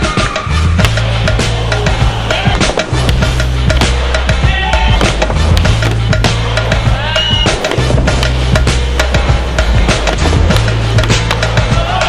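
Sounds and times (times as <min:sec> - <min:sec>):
music with heavy bass: 0:00.0 - 0:12.0.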